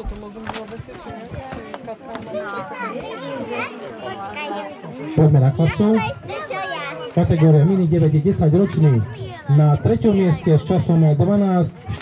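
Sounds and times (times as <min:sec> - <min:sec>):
children chattering and calling out: 0:00.0 - 0:12.0.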